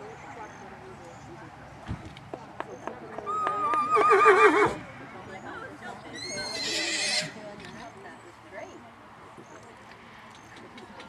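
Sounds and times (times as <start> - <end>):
horse whinnying: 3.3 - 4.8, 6.2 - 7.4.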